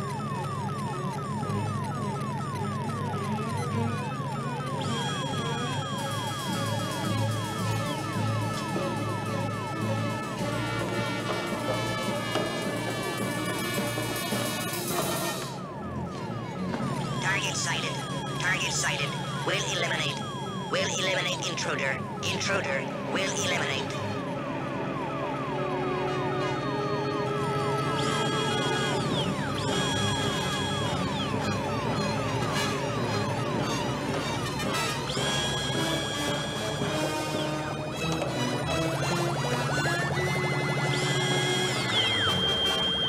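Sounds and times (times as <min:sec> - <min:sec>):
falling electronic blips: 0:17.0 - 0:24.1.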